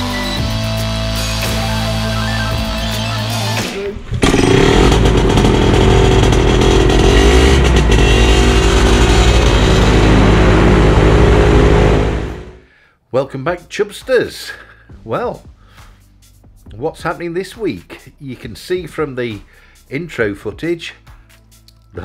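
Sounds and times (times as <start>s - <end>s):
music: 0.0s - 4.2s, 13.2s - 22.0s
paramotor engine running: 4.2s - 12.7s.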